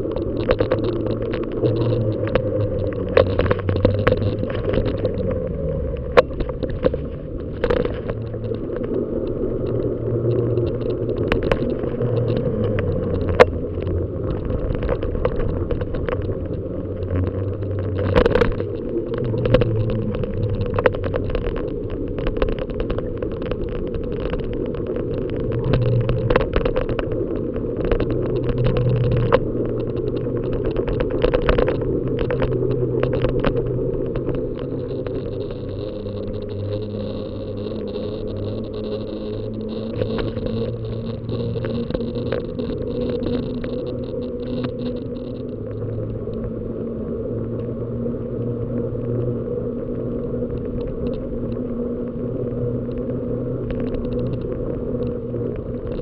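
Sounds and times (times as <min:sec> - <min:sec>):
bicycle rattling on broken asphalt: 0:00.0 - 0:46.4
tyres rumbling on smooth tarmac: 0:00.0 - 0:56.0.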